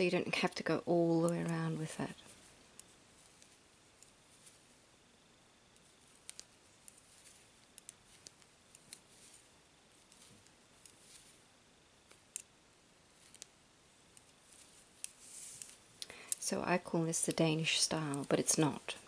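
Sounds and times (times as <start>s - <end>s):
metal knitting needles clicking: 2.7s - 4.2s, 5.8s - 9.4s, 12.0s - 12.5s, 13.2s - 13.5s, 17.2s - 18.9s.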